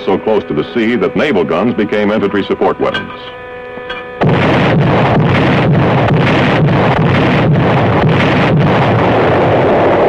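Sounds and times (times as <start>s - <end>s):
naval gunfire rumbling din: 4.2s - 10.0s.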